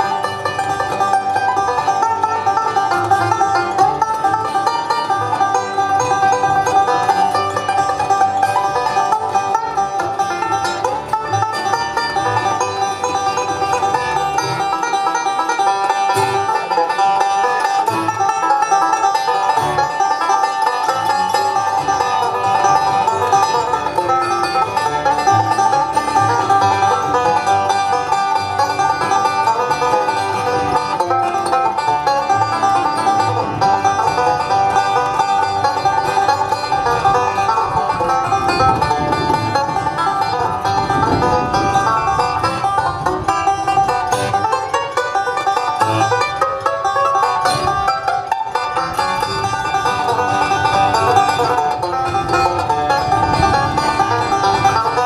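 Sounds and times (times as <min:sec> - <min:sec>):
acoustic guitar: 0:00.0 - 0:55.0
banjo picking bluegrass tune: 0:00.0 - 0:55.0.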